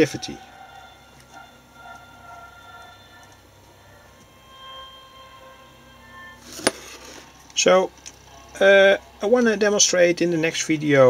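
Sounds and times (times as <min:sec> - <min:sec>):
faint radio music: 0:00.0 - 0:11.0.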